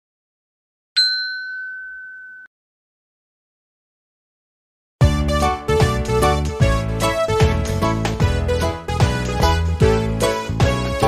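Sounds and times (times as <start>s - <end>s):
bell-like ding: 1.0s - 2.5s.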